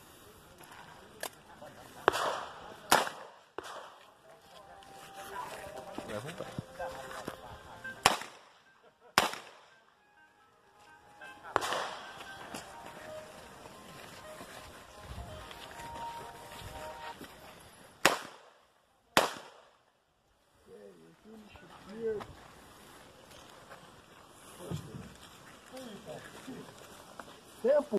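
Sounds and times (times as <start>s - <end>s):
faint gunshot crack: 2.0s - 4.0s, 8.0s - 8.5s, 9.2s - 9.7s, 11.6s - 12.1s, 18.0s - 18.5s, 19.2s - 19.7s
loud pistol shots: 2.1s - 4.0s, 8.0s - 8.5s, 9.2s - 9.7s, 11.6s - 12.0s, 18.0s - 18.5s, 19.2s - 19.7s.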